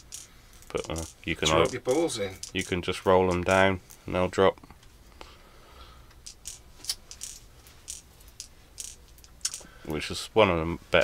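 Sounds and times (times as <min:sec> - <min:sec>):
metal bbs clicking and rattling: 0:00.0 - 0:04.1, 0:06.0 - 0:10.0.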